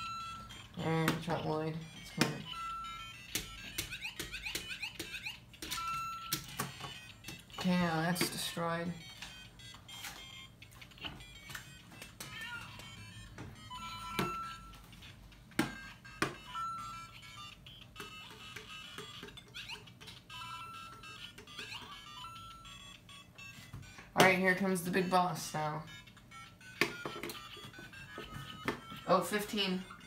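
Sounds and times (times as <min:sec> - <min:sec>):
toy speaker playing game music: 0:00.0 - 0:30.0.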